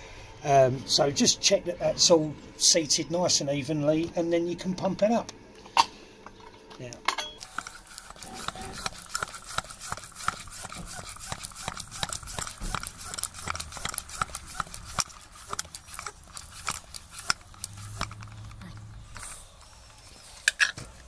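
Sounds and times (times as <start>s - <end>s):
floor pump strokes clicking and hissing: 7.4s - 21.0s.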